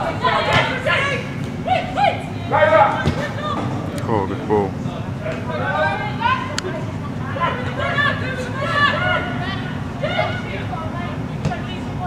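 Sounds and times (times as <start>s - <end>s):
footballers shouting: 0.0s - 4.5s, 5.1s - 12.0s.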